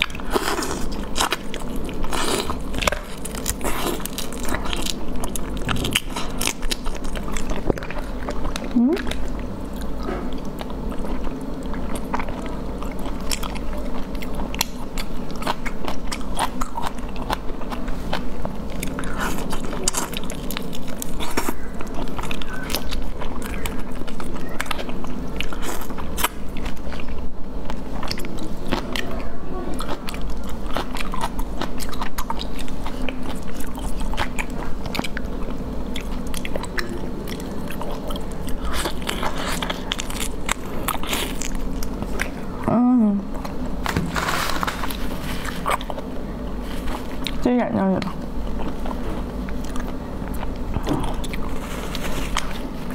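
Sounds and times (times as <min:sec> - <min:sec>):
steady low hum: 0:00.0 - 0:52.9
wet mouth eating sounds: 0:00.0 - 0:52.9.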